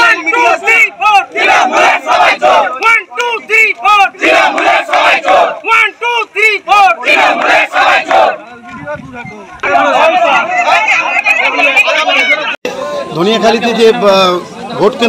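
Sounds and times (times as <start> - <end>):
crowd chanting slogans: 0.0 - 8.5, 9.6 - 12.9.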